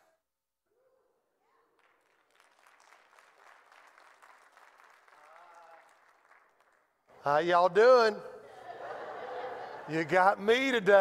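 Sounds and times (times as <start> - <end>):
faint hand claps: 1.7 - 7.2.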